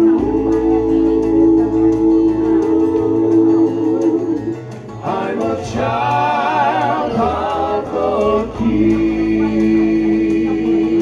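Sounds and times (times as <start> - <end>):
male vocal quartet singing in harmony: 0.0 - 11.0.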